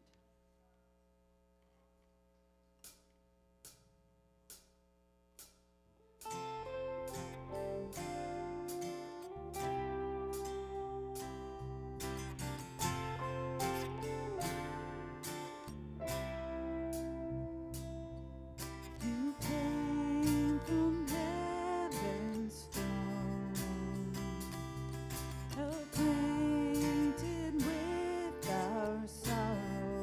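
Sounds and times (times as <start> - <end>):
band playing: 6.2 - 22.2.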